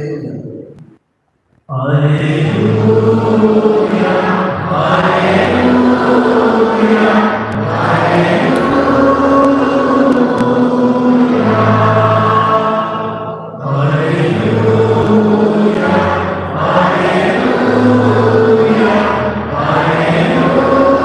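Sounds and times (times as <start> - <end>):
choir singing a slow hymn: 1.7 - 21.0.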